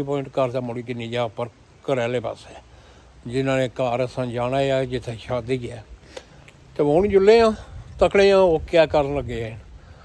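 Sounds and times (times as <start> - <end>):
man talking: 0.0 - 6.0, 6.6 - 9.8.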